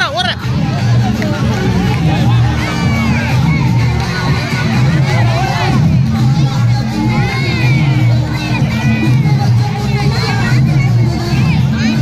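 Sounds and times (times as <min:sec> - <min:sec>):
crowd shouting and cheering: 0:00.0 - 0:12.0
dance music with pulsing bass: 0:00.0 - 0:12.0.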